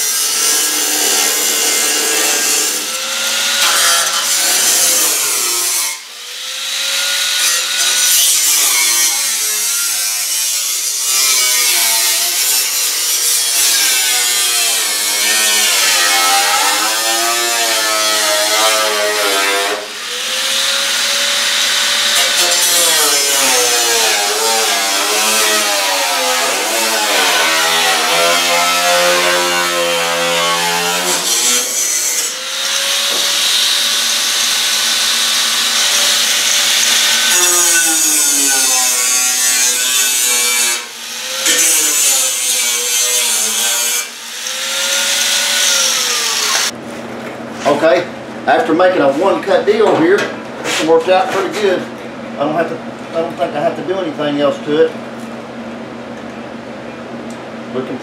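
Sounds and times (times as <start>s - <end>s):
angle grinder cutting steel: 0.0s - 46.8s.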